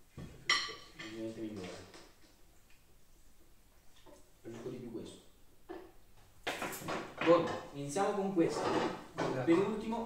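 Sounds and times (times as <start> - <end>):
people talking: 1.0 - 1.9, 7.2 - 10.0.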